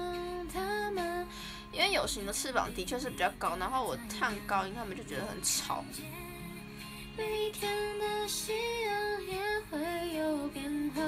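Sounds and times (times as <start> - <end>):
backing music: 0.0 - 11.0
woman singing: 0.0 - 11.0.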